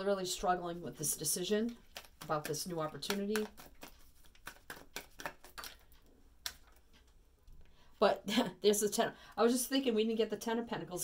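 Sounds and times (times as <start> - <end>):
cards clicking and snapping: 1.7 - 6.9.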